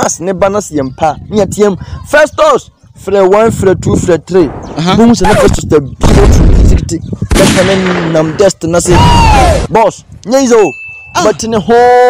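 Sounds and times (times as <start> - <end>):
wind buffeting microphone: 0.0 - 10.6.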